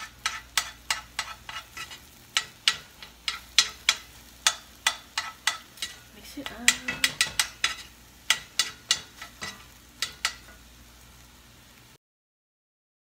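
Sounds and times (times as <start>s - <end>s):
utensil clinking against bowl: 0.2s - 10.6s.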